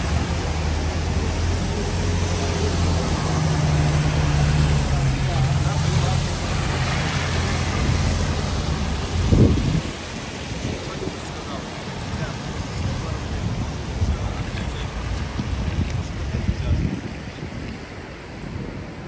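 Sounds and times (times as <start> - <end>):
bus engine droning: 0.0 - 19.0
traffic on a wet street: 0.0 - 19.0.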